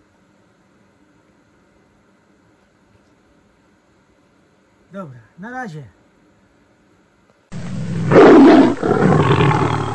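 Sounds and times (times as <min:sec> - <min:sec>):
loud big cat roar: 0:07.6 - 0:09.9.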